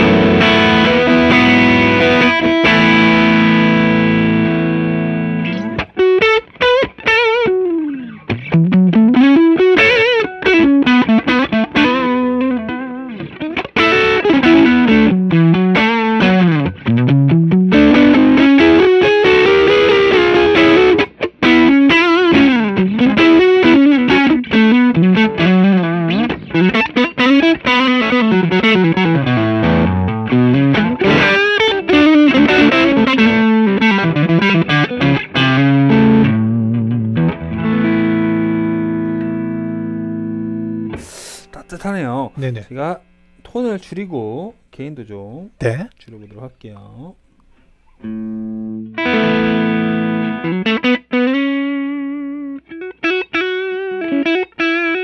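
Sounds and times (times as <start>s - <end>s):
distorted electric guitar lead: 0.0s - 47.2s, 47.9s - 55.0s.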